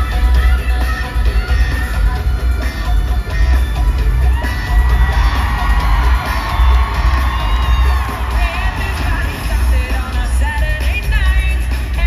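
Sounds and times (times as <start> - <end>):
pop music over sound system: 0.0 - 12.0
crowd cheering: 3.3 - 10.4.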